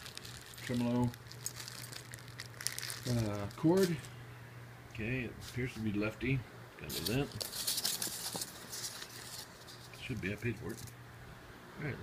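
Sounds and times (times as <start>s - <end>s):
foam packing wrap rustling: 0.0s - 4.1s, 6.9s - 10.9s.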